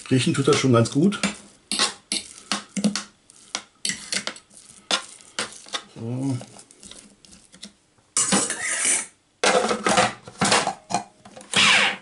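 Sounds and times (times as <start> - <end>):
metal fork scraping plastic bowl: 0.5 - 9.1.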